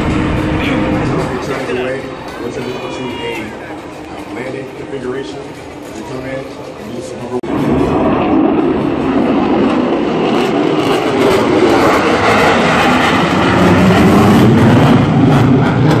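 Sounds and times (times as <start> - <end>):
jet engine roar: 0.0 - 16.0.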